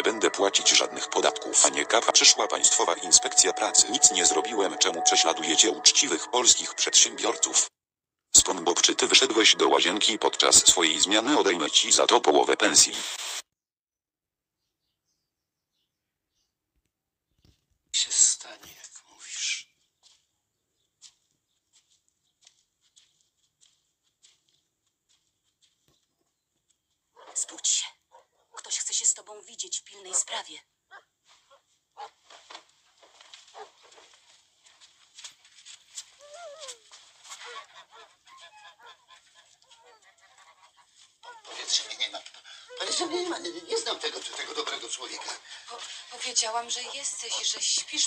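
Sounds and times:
person whispering: 0.0s - 7.6s, 18.0s - 19.7s.

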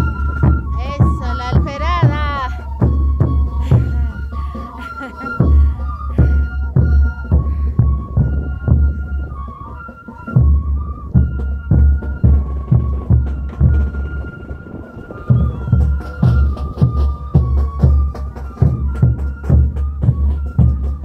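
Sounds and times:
heavy drum beats: 0.0s - 9.6s, 10.3s - 14.3s, 15.2s - 21.0s
high flute melody: 0.0s - 21.0s.

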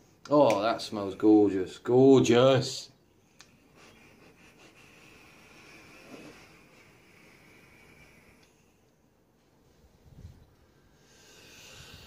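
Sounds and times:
e-cigarette coil hissing: 3.9s - 8.8s, 11.0s - 12.0s.

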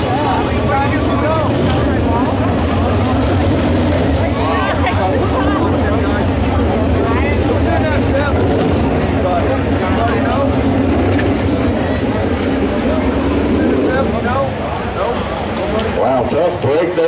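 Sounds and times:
low engine hum: 0.0s - 16.8s
voices chattering: 0.0s - 17.0s.

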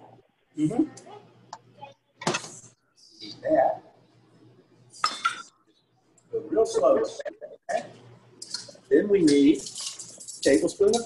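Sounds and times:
utensil clinking metal bowl: 8.4s - 11.0s.

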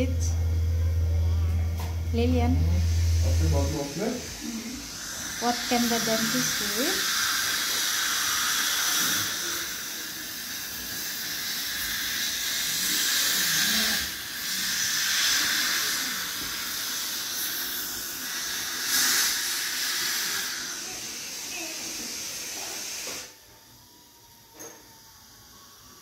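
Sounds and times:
steady airy hiss: 2.6s - 23.4s.

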